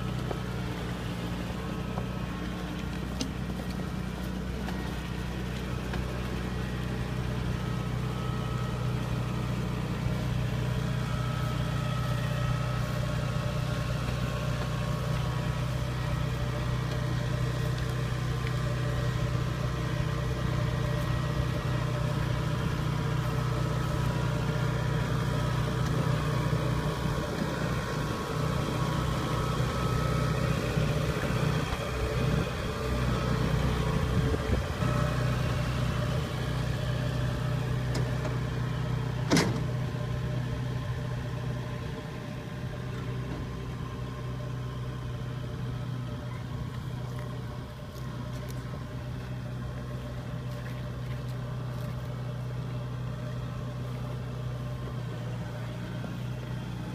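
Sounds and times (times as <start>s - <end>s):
combine harvester diesel engine running: 0.0s - 56.9s.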